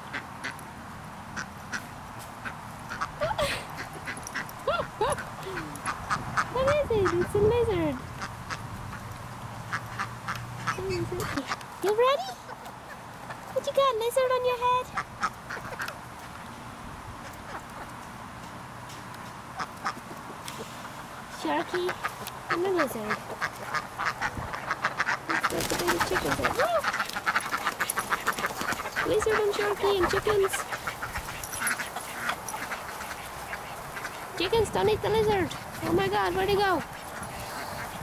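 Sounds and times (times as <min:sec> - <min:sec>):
ducks calling: 0:00.0 - 0:18.2, 0:19.2 - 0:38.0
chickens calling: 0:00.0 - 0:38.0
chicks peeping: 0:19.6 - 0:38.0.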